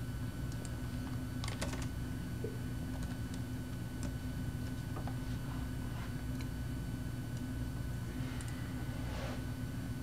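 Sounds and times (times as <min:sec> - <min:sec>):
steady low hum: 0:00.0 - 0:10.0
computer keyboard typing: 0:01.4 - 0:01.9.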